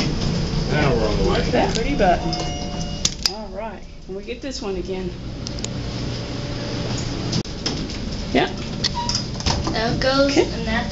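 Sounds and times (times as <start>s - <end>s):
elevator doors sliding: 0.0s - 10.8s
faint steady hum: 0.0s - 10.9s.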